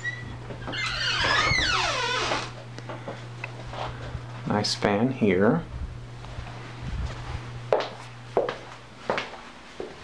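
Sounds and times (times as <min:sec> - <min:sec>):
drawn-out squeak: 0:00.0 - 0:02.5.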